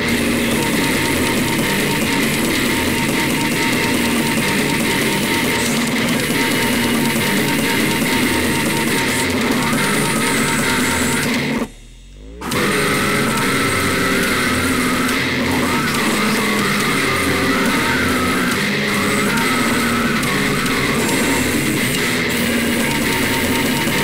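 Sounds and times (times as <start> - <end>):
death metal with distorted guitars: 0.0 - 24.0
low bass tone: 9.3 - 23.8.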